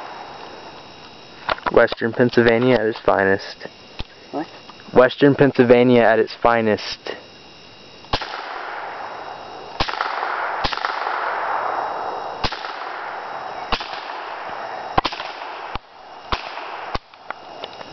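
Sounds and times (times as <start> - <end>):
steady hiss: 0.0 - 17.9
rifle shots: 8.1 - 9.1, 9.8 - 17.2.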